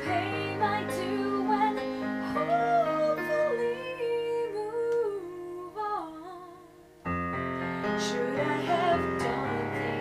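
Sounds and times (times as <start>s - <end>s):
digital piano: 0.0s - 5.9s, 6.5s - 10.0s
woman singing a slow ballad: 0.0s - 6.8s, 7.8s - 10.0s.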